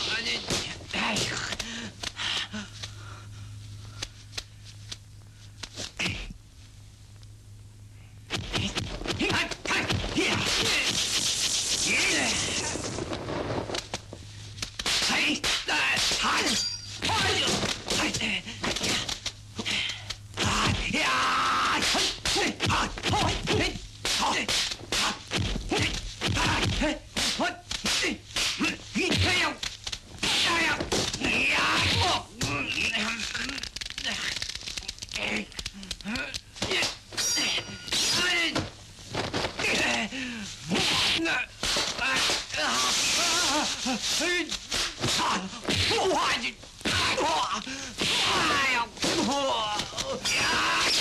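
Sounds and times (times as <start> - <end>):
steady low hum: 0.0 - 51.0
film soundtrack clicks and rustles: 32.7 - 36.6.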